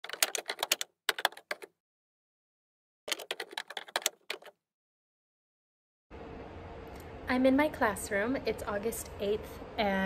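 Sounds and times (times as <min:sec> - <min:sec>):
keyboard typing clicks: 0:00.0 - 0:01.7, 0:03.1 - 0:04.5.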